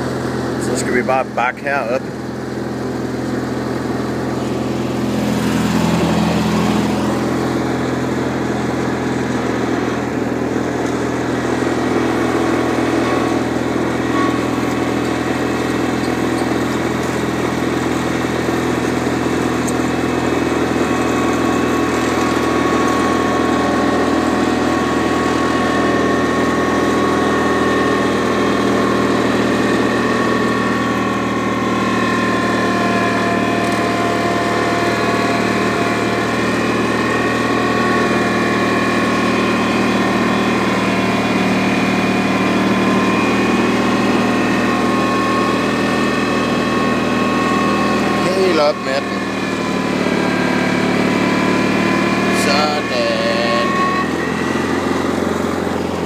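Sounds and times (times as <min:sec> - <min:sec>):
small engine running: 0:00.0 - 0:56.0.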